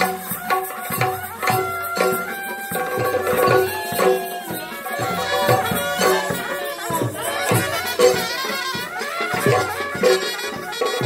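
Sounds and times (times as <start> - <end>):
drum strokes: 0.0 - 11.0.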